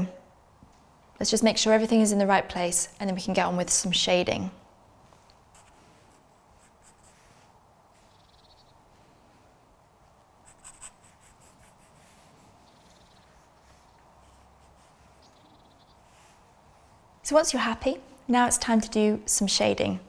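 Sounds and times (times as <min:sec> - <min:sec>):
pencil scratching on paper: 0:05.5 - 0:07.5, 0:10.4 - 0:12.4.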